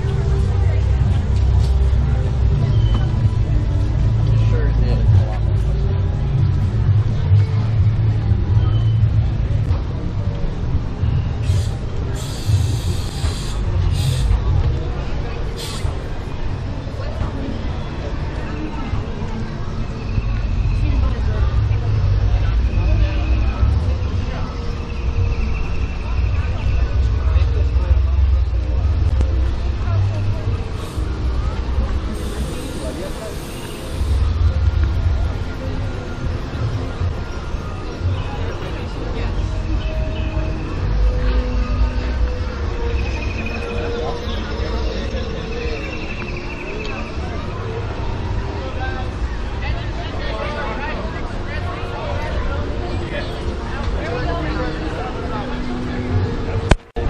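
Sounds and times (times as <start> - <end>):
steady low rumble: 0.0 - 17.4, 18.8 - 39.8
indistinct voices of people: 0.0 - 57.0.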